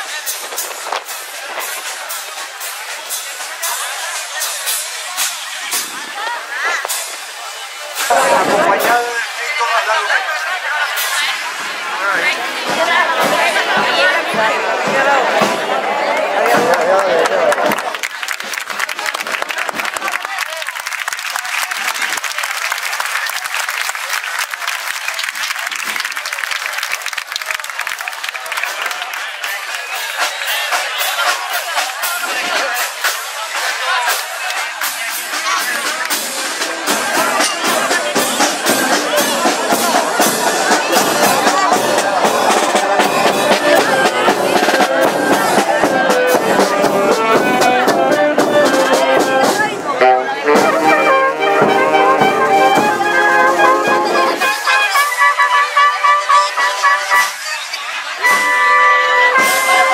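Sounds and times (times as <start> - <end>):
crowd chatter: 0.0 - 59.9
street band playing: 0.0 - 59.9
clapping: 16.1 - 30.9.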